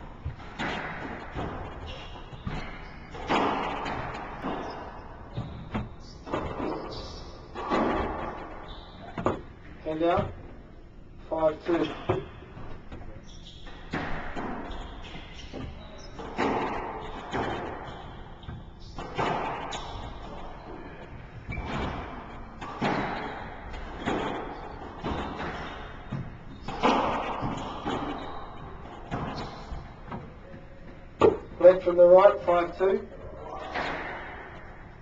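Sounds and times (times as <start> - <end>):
squash ball struck by racquets: 0.2 - 9.5, 13.6 - 30.3, 31.1 - 31.6, 33.7 - 34.8.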